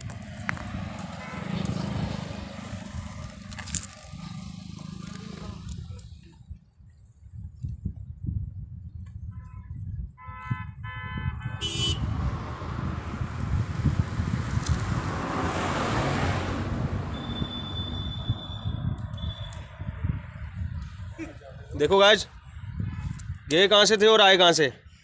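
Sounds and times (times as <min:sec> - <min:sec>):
wind on microphone: 0:00.0 - 0:04.8, 0:05.5 - 0:23.6
vehicle passing: 0:00.0 - 0:05.9, 0:11.6 - 0:20.7
vehicle horn beeping: 0:01.2 - 0:01.9, 0:09.2 - 0:12.2, 0:17.1 - 0:19.7.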